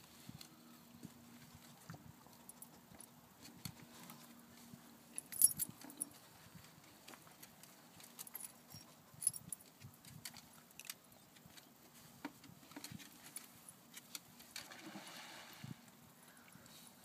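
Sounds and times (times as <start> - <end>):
light clicks and clinks: 5.1 - 11.7.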